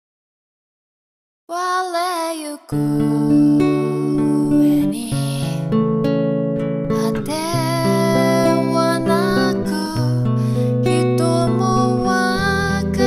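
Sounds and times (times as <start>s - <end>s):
nylon-string guitar chords: 2.7s - 13.0s.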